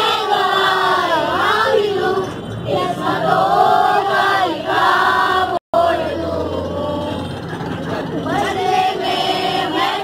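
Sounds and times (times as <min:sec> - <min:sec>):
bus engine humming: 0:00.0 - 0:10.0.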